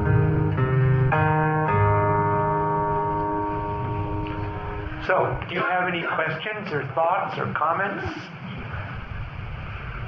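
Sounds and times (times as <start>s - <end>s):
guitar chord ringing: 0.0s - 5.5s.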